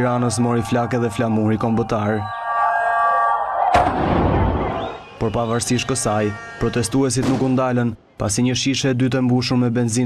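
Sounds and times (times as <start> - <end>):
loud explosive bang: 3.7 - 5.3, 7.2 - 7.7.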